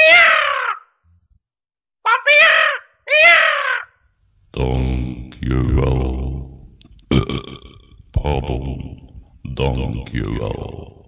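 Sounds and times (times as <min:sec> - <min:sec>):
raven caws through speaker: 0:00.0 - 0:01.0, 0:02.1 - 0:04.0.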